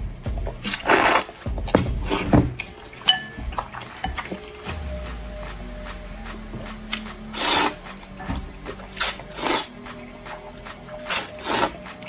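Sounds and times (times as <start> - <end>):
slurping noodles: 0.6 - 2.4, 6.9 - 8.0, 8.7 - 10.0, 10.6 - 12.0.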